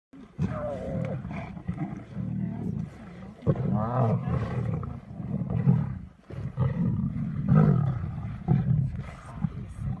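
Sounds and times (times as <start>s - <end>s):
lionesses growling: 0.2s - 10.0s.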